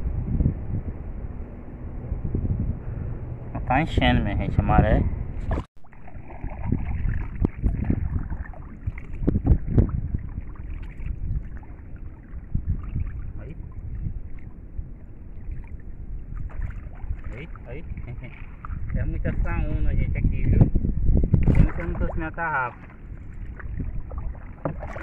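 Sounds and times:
wind buffeting microphone: 0.0s - 25.0s
knocks and splashes: 5.4s - 14.6s, 15.4s - 19.0s, 21.3s - 25.0s
paddling water sounds: 5.4s - 19.5s, 21.1s - 25.0s.

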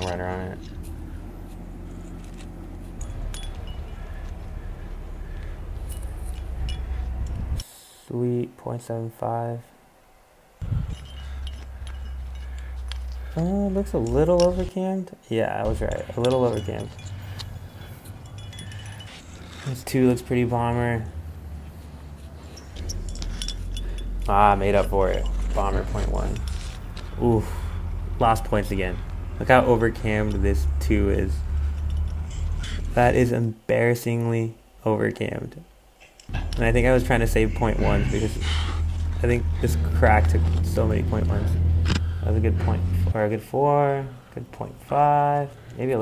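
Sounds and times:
metal hardware clinking: 0.0s - 4.6s, 5.2s - 7.6s, 10.6s - 27.4s, 28.2s - 33.0s
low rumble: 0.0s - 7.6s, 15.7s - 33.2s, 36.3s - 43.2s.

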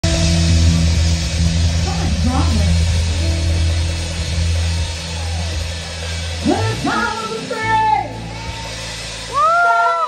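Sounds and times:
electric bass low note: 0.0s - 9.6s
drum kit: 0.0s - 10.0s
electric guitars: 0.0s - 10.0s.

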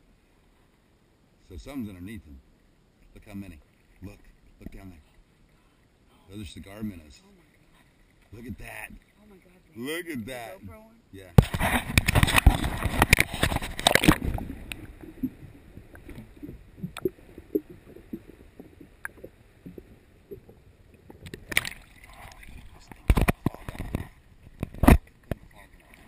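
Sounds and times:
water splashing and rushing: 3.1s - 5.6s, 6.3s - 26.0s
faint pops and ticks underwater: 3.9s - 5.0s, 11.4s - 26.0s.

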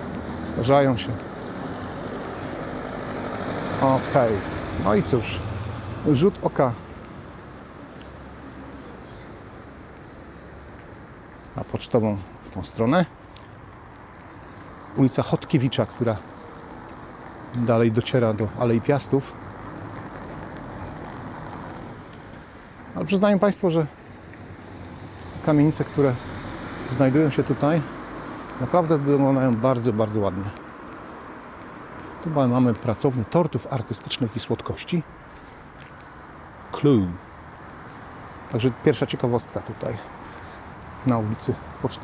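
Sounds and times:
car driving slowly: 0.0s - 42.0s
city street traffic: 0.0s - 42.0s.

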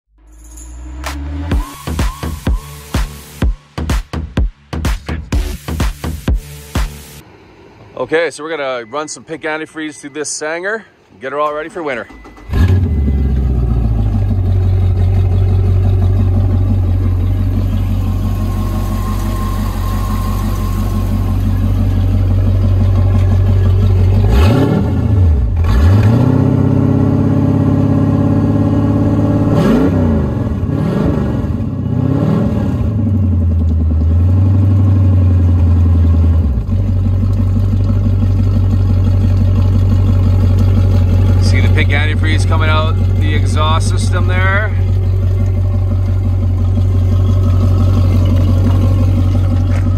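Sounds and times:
boat engine starting and revving: 11.4s - 49.9s.

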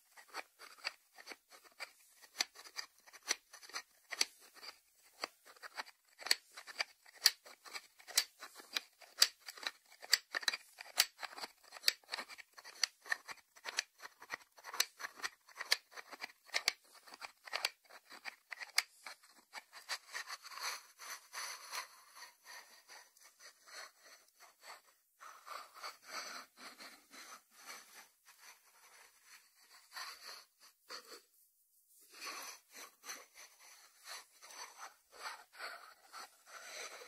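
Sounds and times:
scratchy rubbing on ceramic: 0.0s - 37.0s.

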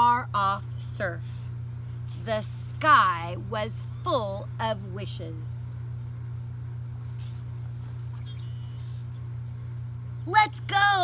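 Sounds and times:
steady low hum: 0.0s - 11.0s
book page turning: 7.0s - 8.4s.

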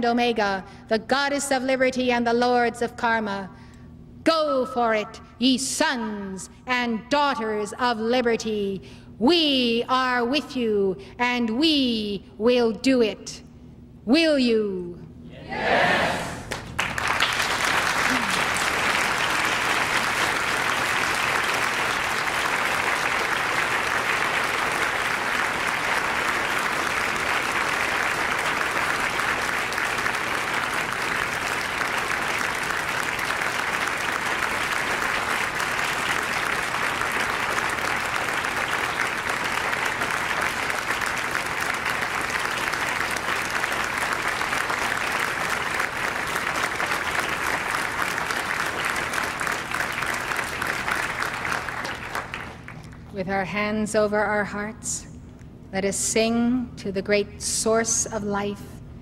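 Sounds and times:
large audience applauding: 16.4s - 53.1s.

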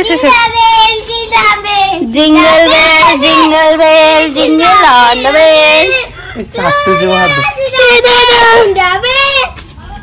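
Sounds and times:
girl singing: 0.1s - 10.0s.

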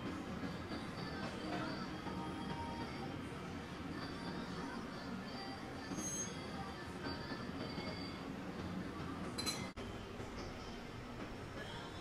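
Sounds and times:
cafe room noise: 0.0s - 12.0s
coffee cup clinking on saucer: 9.4s - 9.7s.

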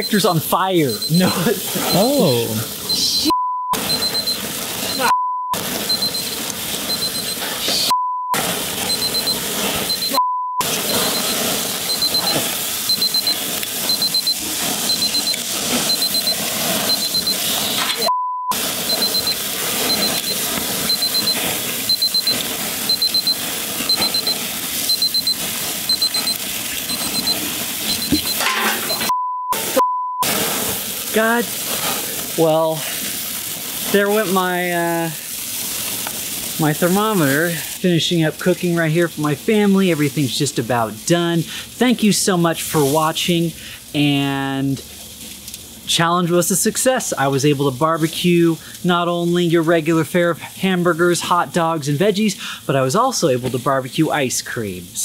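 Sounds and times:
censor bleep tone: 0.0s - 0.3s, 2.9s - 30.2s
thermometer alarm beeping: 0.0s - 30.3s
flames sizzling: 0.0s - 55.0s.

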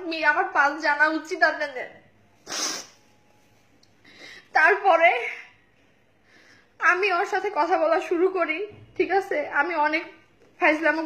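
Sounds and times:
woman sniffing while crying: 2.4s - 3.1s.

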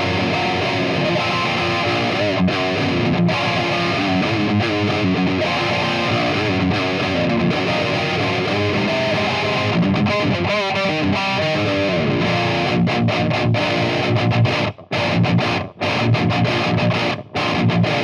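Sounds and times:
distorted electric guitar metal riff: 0.0s - 18.0s.

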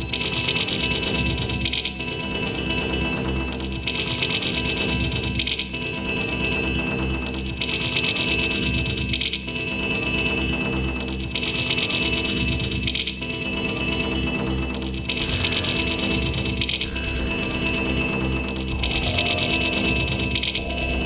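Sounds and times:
looping electronic music: 0.0s - 21.0s
steady high tone: 0.0s - 21.0s.

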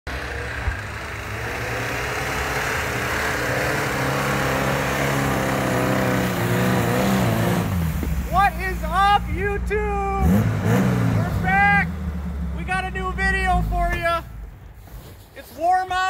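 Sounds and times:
car engine running: 0.1s - 14.8s
tyres on snow: 0.1s - 16.0s.

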